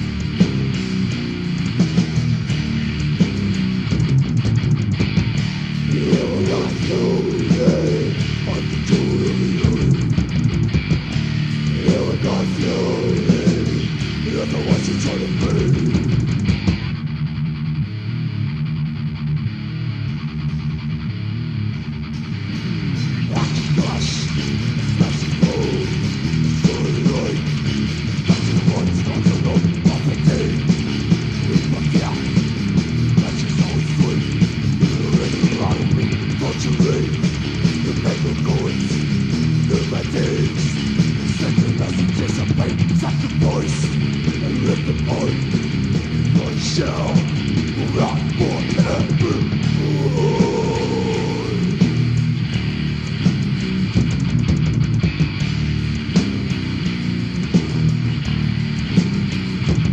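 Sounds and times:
bass and drums: 0:00.0 - 0:59.9
distorted electric guitar riffing: 0:00.0 - 0:59.9.

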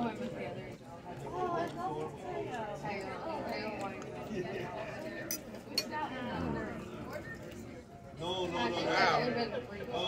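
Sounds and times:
restaurant background chatter: 0:00.0 - 0:10.0.

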